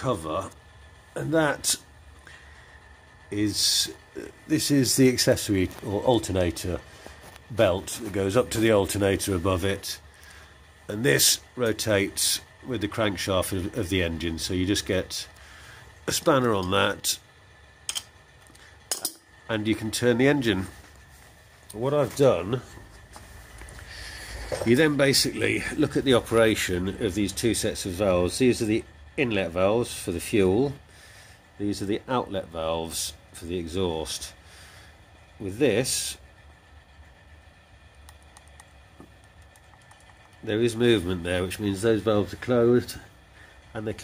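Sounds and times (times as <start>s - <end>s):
low background noise: 0.0s - 44.0s.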